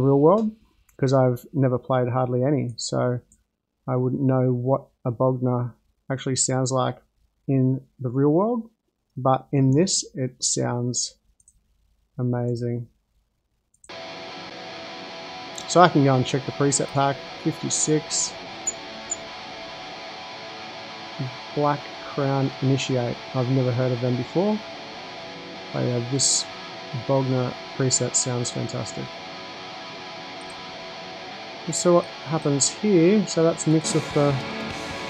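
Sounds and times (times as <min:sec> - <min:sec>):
high-gain electric guitar: 0:13.9 - 0:35.0.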